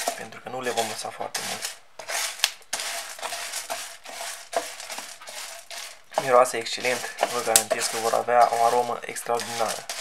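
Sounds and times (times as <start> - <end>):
wooden spatula stirring: 0.0 - 10.0
sunflower seeds rattling on a tray: 0.7 - 10.0.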